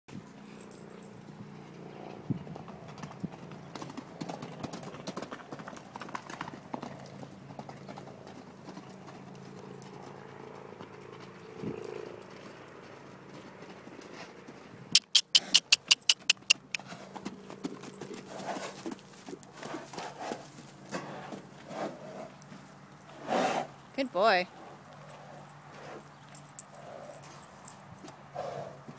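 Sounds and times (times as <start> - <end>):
horses galloping on dirt: 0.2 - 28.9
sharp hoof clacks: 2.6 - 21.5.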